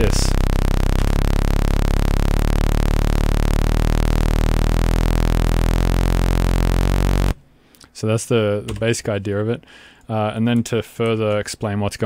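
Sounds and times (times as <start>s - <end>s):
buzzy synth tone changing pitch: 0.0s - 7.4s.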